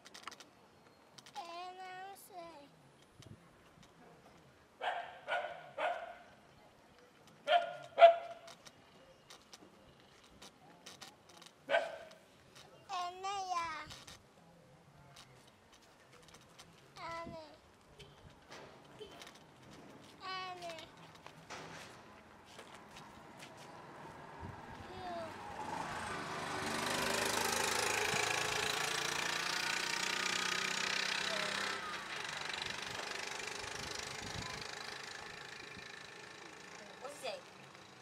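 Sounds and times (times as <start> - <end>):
vehicle passing: 21.9 - 38.0.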